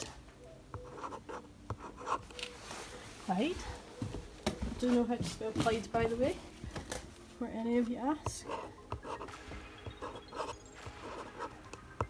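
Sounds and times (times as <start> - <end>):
marker pen writing on plastic: 0.7 - 2.6, 8.0 - 12.0.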